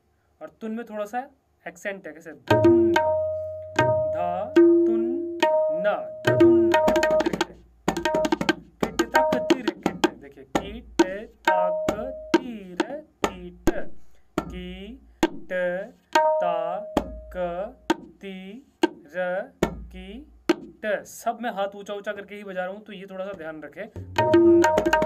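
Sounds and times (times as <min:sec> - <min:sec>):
tabla sharp strokes: 0:02.5 - 0:14.6, 0:15.2 - 0:18.2, 0:18.8 - 0:19.9, 0:20.5 - 0:20.8, 0:24.0 - 0:25.0
tabla bass strokes sliding down: 0:02.6 - 0:07.2.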